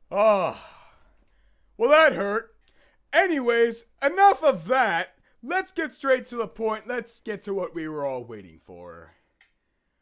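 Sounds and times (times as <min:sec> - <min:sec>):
man's vocal exclamation: 0:00.1 - 0:00.8.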